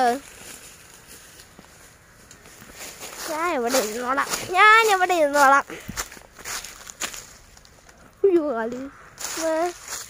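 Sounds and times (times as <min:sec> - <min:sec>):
footsteps in dry leaves: 0:00.0 - 0:10.0
soft crackles: 0:00.0 - 0:10.0.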